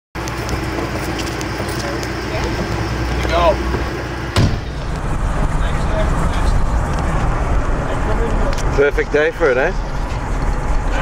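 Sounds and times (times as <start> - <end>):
vehicle engine and road noise: 0.2 - 11.0.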